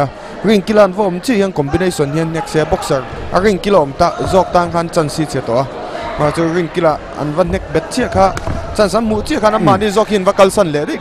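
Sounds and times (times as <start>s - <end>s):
man commentating fast: 7.5s - 11.0s.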